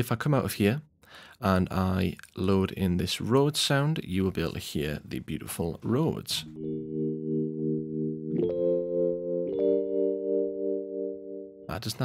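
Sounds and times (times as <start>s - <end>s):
electric piano sustained chords: 6.5s - 11.7s.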